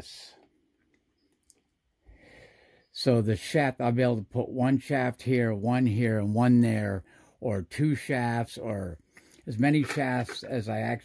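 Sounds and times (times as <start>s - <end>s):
soft breath drawn in: 2.0s - 2.9s.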